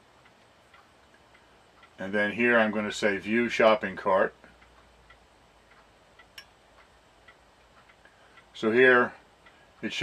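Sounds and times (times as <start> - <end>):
faint even ticking: 0.0 - 10.0.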